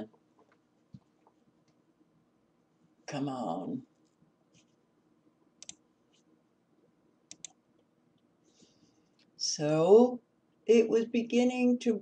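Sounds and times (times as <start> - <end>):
computer mouse clicks: 5.6 - 6.2, 7.3 - 7.6.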